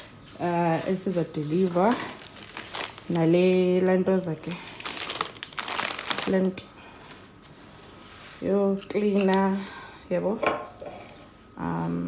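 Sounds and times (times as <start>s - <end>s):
plastic packaging crinkling: 1.4s - 7.4s.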